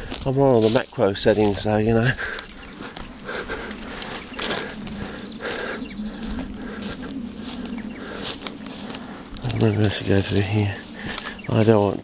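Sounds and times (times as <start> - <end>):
twigs snapping: 0.0 - 9.8, 10.9 - 11.5
rustling of dry scrub: 0.0 - 12.0.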